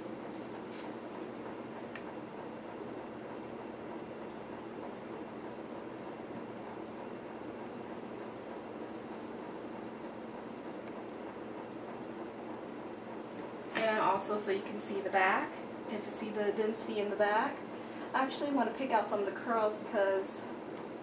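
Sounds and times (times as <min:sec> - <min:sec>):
room hum and hiss: 0:00.0 - 0:21.0.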